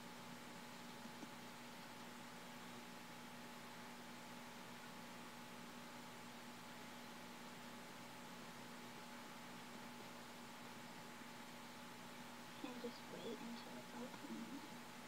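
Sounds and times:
faint electrical hum: 0:00.0 - 0:15.0.

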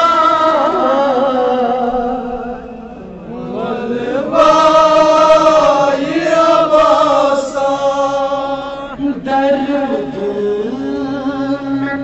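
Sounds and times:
man chanting a lament over loudspeaker: 0:00.0 - 0:12.0.

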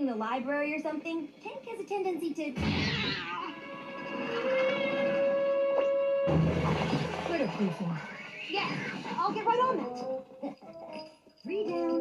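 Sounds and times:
background music: 0:02.5 - 0:12.0
cartoon cat yowling: 0:02.8 - 0:03.6.

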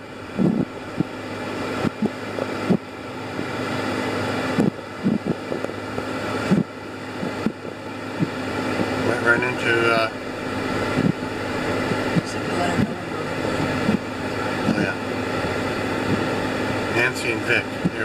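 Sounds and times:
car engine and fan hum: 0:00.0 - 0:18.0.

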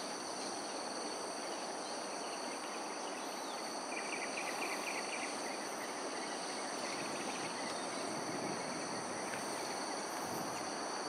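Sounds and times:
background hiss: 0:00.0 - 0:11.0
insects droning: 0:00.0 - 0:11.0.

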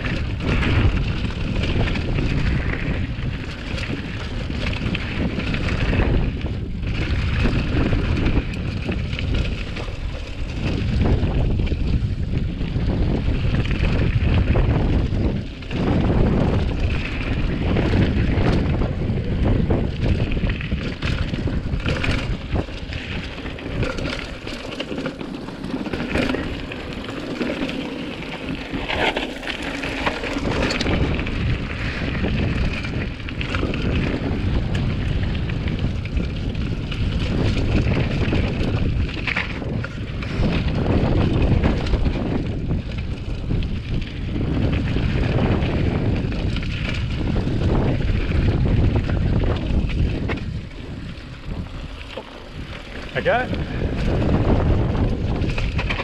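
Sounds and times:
bike rattling and knocking: 0:00.0 - 0:56.0
wind buffeting microphone: 0:00.0 - 0:56.0
tyres on loose stones: 0:15.7 - 0:56.0.

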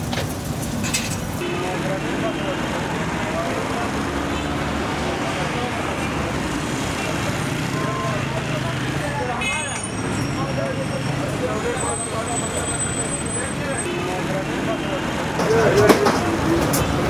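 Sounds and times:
food sizzling on a griddle: 0:00.0 - 0:01.4
street noise: 0:00.0 - 0:17.0
indistinct voices: 0:00.9 - 0:17.0.

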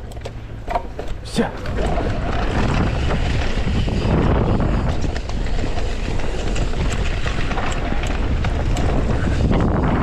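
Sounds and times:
bike tyres rumbling on dirt: 0:00.0 - 0:10.0
wind rushing over microphone: 0:01.4 - 0:10.0.

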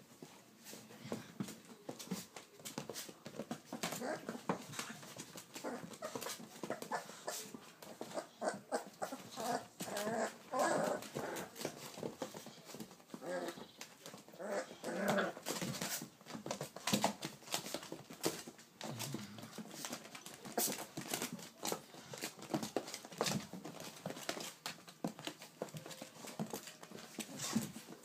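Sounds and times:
puppies whimpering and growling: 0:03.7 - 0:16.0.

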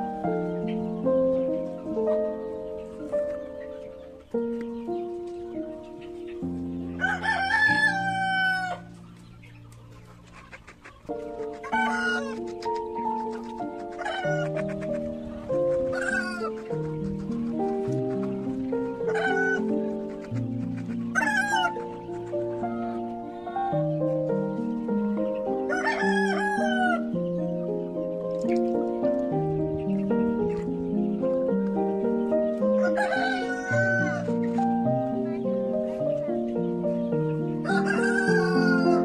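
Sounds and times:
background music: 0:00.0 - 0:39.0
chicken calls: 0:00.0 - 0:39.0.

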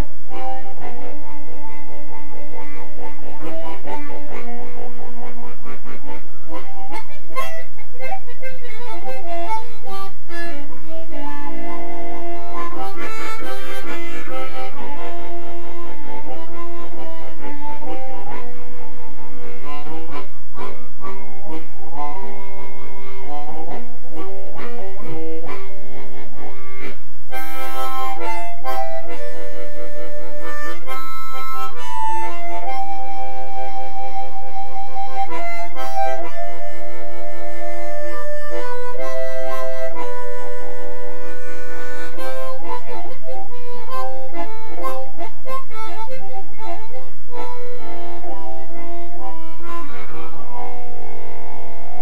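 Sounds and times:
harmonica playing: 0:00.0 - 0:52.0.

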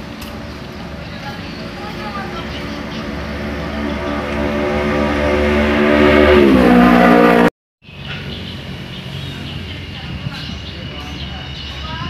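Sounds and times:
engine running: 0:00.0 - 0:07.5
workshop hum: 0:00.0 - 0:07.5.

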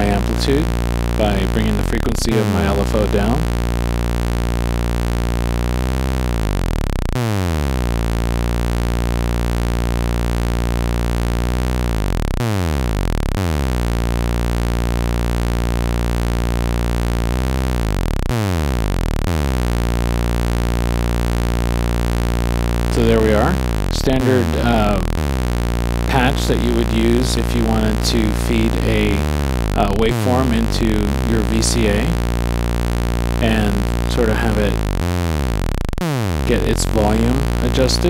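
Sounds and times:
buzzy oscillator tone with pitch swoops: 0:00.0 - 0:38.0.

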